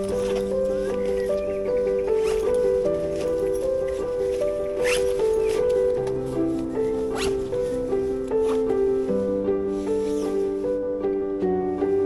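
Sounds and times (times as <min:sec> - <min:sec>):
slow background music: 0:00.0 - 0:12.0
backpack zipper pulled: 0:04.8 - 0:05.7.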